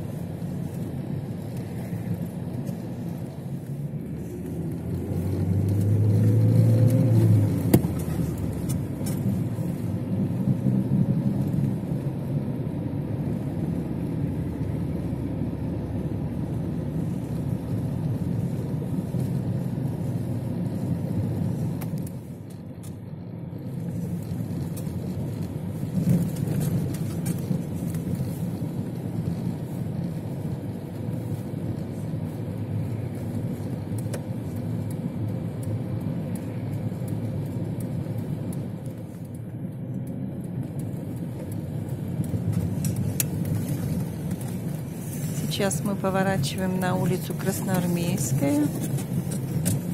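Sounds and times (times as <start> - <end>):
car engine and tyre noise: 0.0 - 49.9.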